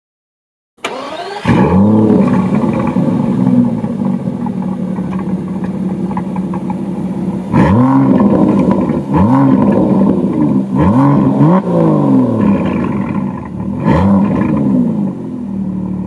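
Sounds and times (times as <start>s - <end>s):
car engine starting and idling: 0.8s - 16.0s.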